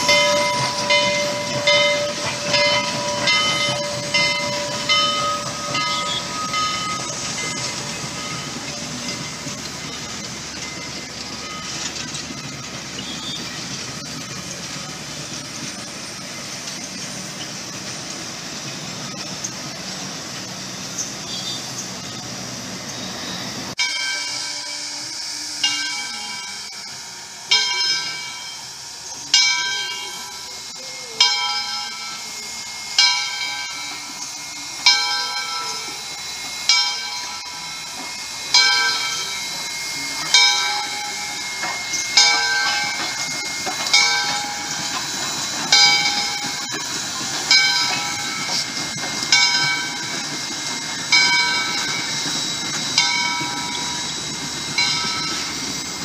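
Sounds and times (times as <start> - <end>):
locomotive bell ringing: 0.0 - 56.0
steam hissing: 0.0 - 56.0.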